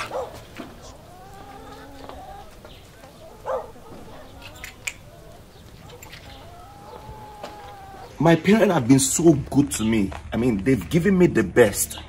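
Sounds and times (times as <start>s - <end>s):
faint drawn-out animal calls: 0.0s - 8.2s.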